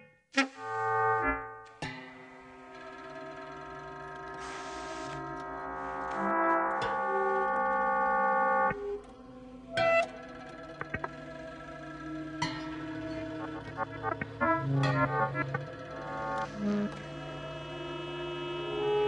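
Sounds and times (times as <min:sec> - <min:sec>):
sustained horn-like tones: 0:00.4 - 0:01.6, 0:02.3 - 0:09.1, 0:09.7 - 0:19.0.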